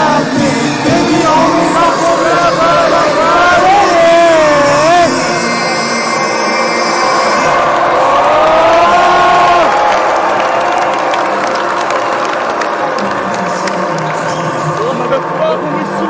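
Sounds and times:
crowd cheering and clapping: 0.0s - 16.0s.

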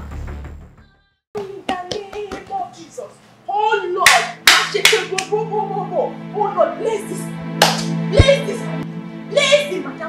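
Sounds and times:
hands clapping: 4.0s - 5.4s, 7.6s - 8.0s.

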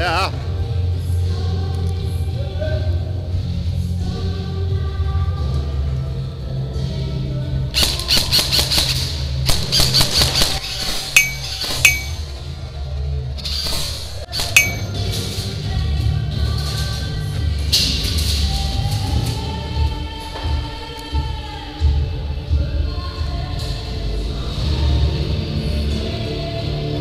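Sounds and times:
airsoft rifle rapid shots: 7.8s - 11.6s
sharp ringing pings: 11.2s - 12.2s, 14.5s - 15.0s.

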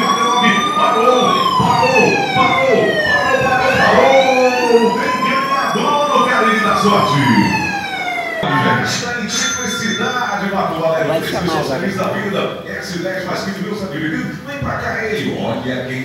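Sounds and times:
siren wailing: 0.0s - 10.2s
voices: 0.0s - 16.0s.

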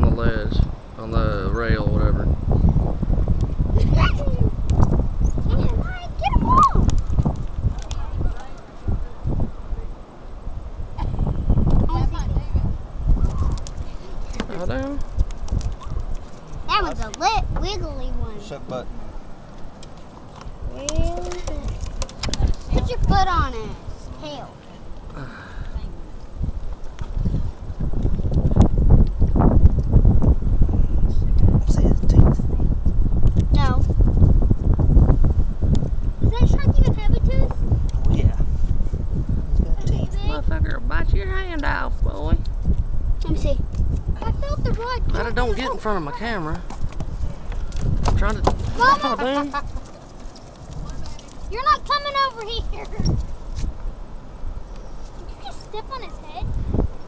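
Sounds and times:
low microphone rumble: 0.0s - 16.8s, 24.8s - 45.6s.

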